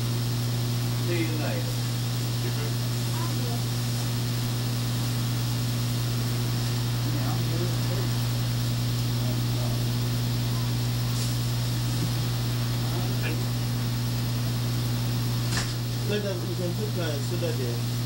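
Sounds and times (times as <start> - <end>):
hiss: 0.0 - 13.5
electrical hum: 0.0 - 18.0
faint voices: 1.0 - 4.6, 6.7 - 13.6.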